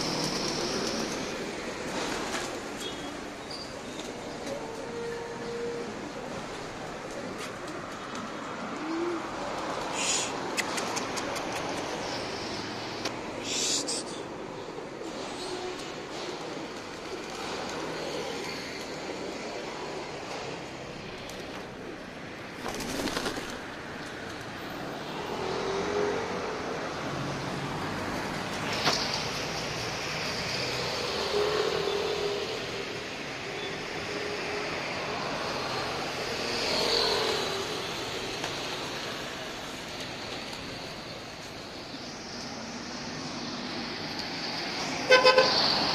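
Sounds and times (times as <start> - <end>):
pigeon wingbeats: 0.0 - 1.3, 22.6 - 23.6
traffic hum: 0.0 - 45.9
pigeons cooing: 4.2 - 12.2.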